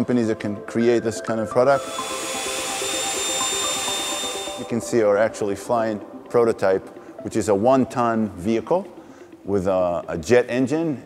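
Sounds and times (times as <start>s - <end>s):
ducted fan whining: 1.6s - 5.5s.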